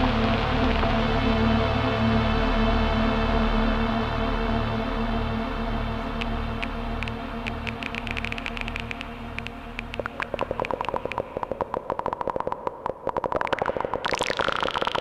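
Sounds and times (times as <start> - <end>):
low droning synth pad: 0.0 - 12.4.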